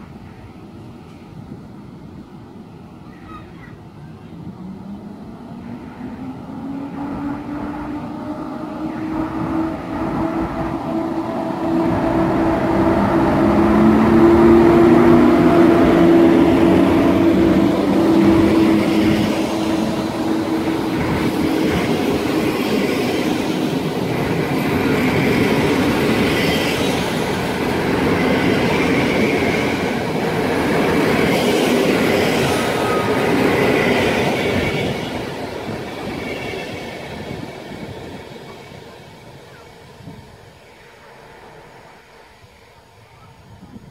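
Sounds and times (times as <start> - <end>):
electric locomotive humming: 0.0 - 43.9
train wheels rumbling on rails: 0.0 - 43.9.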